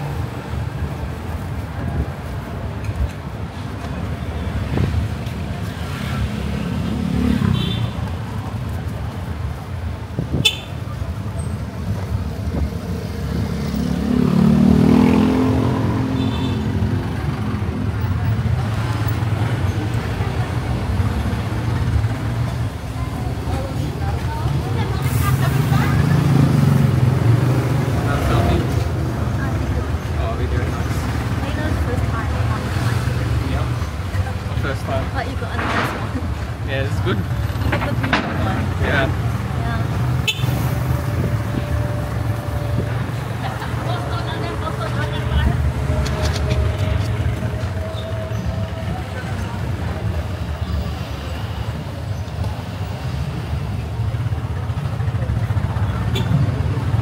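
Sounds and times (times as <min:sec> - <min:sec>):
road noise: 0:00.0 - 0:57.0.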